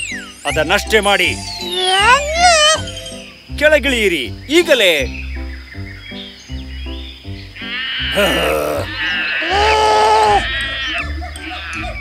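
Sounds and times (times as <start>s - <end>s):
drawn-out cartoon vocal cry: 1.8s - 2.9s, 7.8s - 11.9s.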